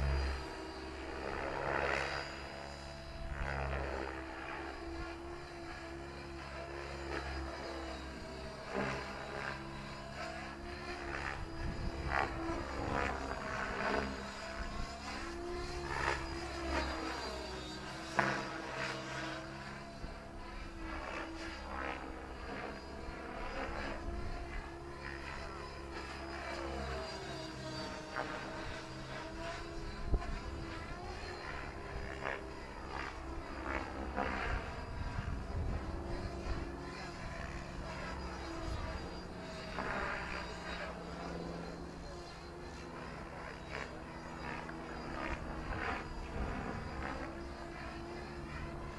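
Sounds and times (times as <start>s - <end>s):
rc helicopter rotor whining: 0.0s - 48.9s.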